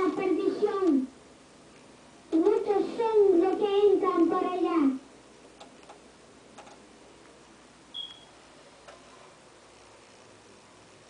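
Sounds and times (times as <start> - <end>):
young boy's high voice: 0.0 - 1.2, 2.3 - 5.1
short high chirp: 7.9 - 8.3.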